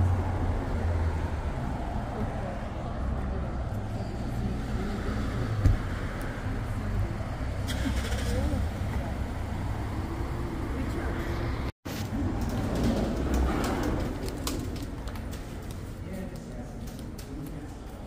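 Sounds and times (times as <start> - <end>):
road traffic rumble: 0.0 - 18.0.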